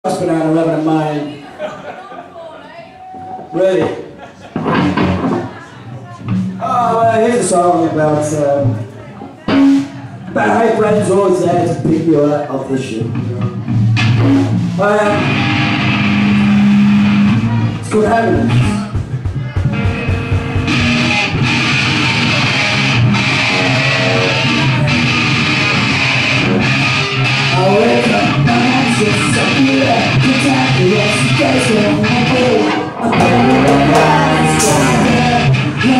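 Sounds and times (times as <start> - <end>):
drums: 3.2 - 35.9
loud electric guitars: 3.9 - 12.1, 13.0 - 35.9.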